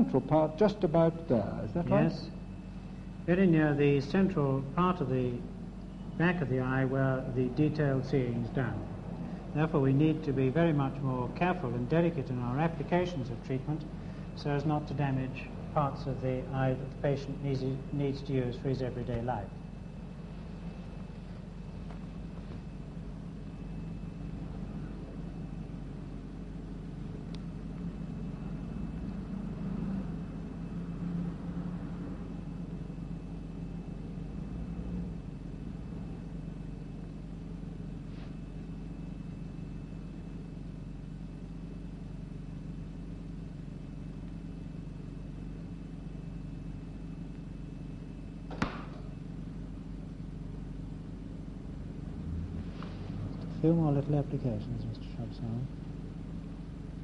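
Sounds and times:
steady low hum: 0:00.0 - 0:57.0.

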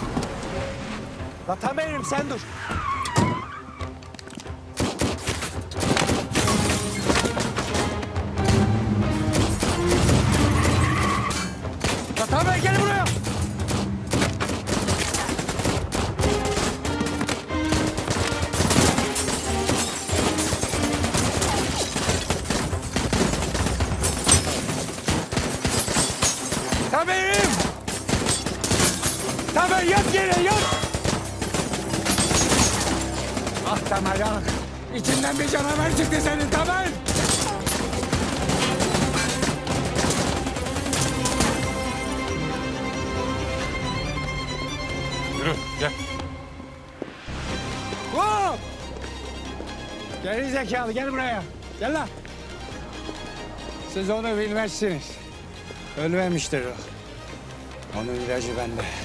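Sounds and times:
dramatic music score: 0:00.0 - 0:59.0
rapid gunfire: 0:13.6 - 0:34.7, 0:37.0 - 0:41.6.

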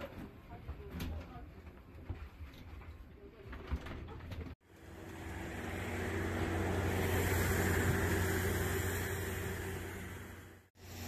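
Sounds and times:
aircraft engine rumble: 0:04.6 - 0:10.7.

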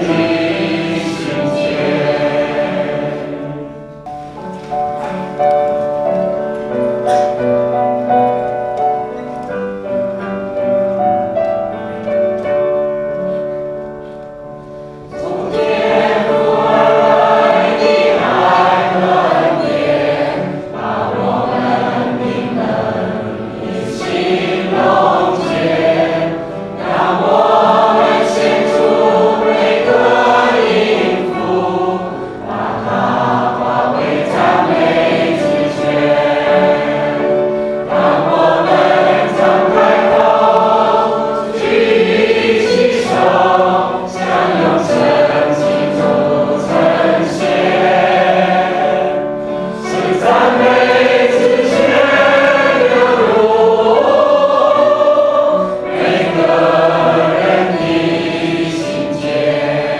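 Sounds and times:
choir singing: 0:00.0 - 0:09.2, 0:15.0 - 0:59.9.

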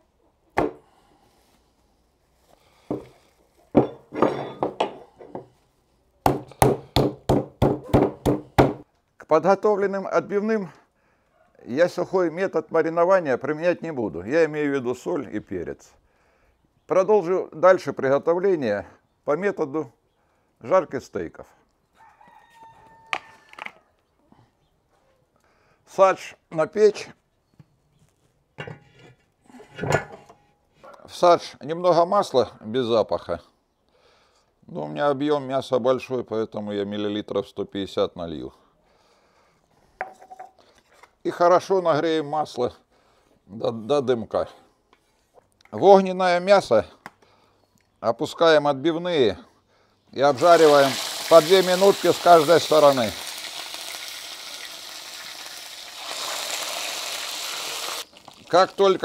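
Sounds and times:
metal pan scraping and clunking: 0:03.8 - 0:05.1, 0:28.6 - 0:30.5
meat mallet pounding meat: 0:06.3 - 0:08.8.

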